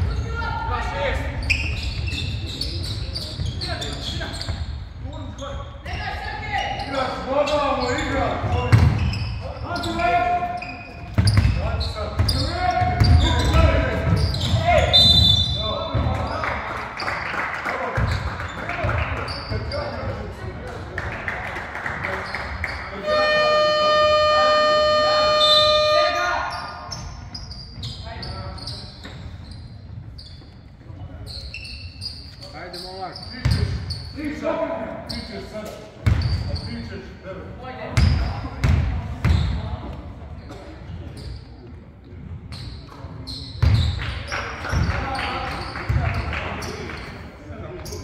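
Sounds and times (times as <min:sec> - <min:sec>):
scoreboard horn: 0:23.0 - 0:26.4.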